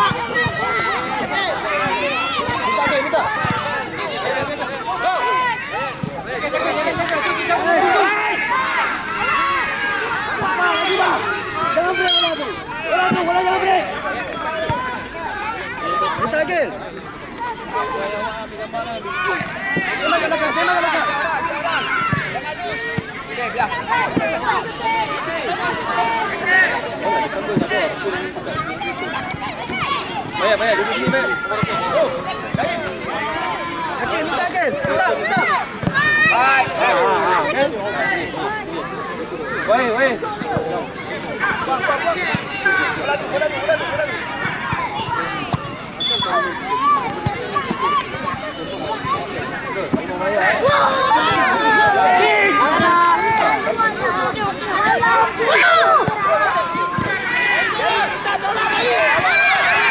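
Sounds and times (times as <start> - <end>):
many voices shouting: 0.0 - 59.9.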